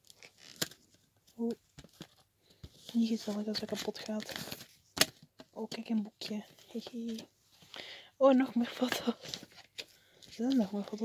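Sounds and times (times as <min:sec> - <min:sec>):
paper rustling: 0:00.0 - 0:07.7, 0:08.8 - 0:11.0.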